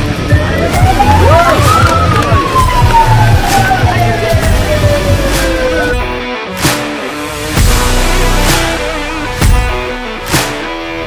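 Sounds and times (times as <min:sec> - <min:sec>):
background music with steady beat: 0:00.0 - 0:11.0
siren rising and falling: 0:00.2 - 0:06.2.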